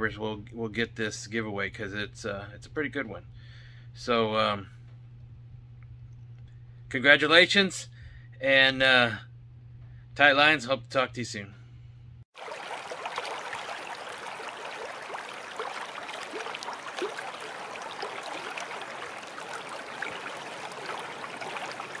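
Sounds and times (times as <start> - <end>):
stream trickling and gurgling: 12.3 - 22.0.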